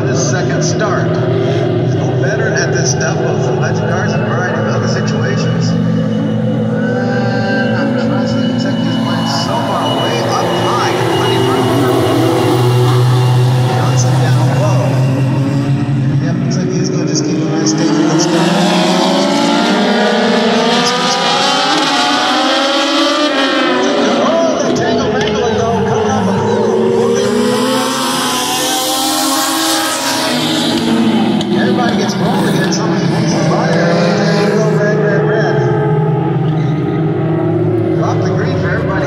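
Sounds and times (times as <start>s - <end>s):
race car engines: 0.0s - 39.0s.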